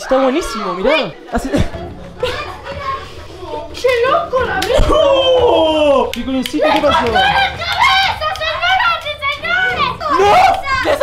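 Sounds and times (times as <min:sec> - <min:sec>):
excited overlapping voices: 0:00.0 - 0:11.0
children calling out: 0:02.1 - 0:11.0.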